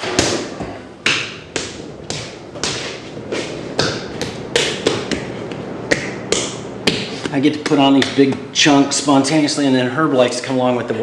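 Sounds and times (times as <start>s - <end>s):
hands slapping and rubbing sculpture: 0.0s - 8.4s.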